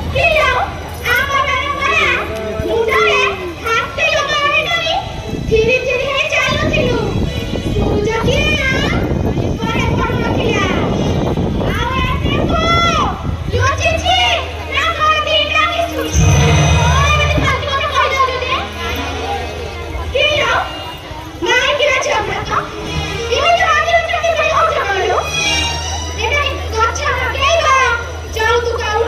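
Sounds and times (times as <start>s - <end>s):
low hum: 16.1s - 18.5s.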